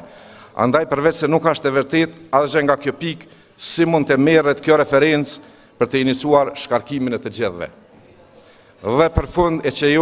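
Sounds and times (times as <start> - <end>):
man speaking: 0.0 - 7.8, 8.8 - 10.0.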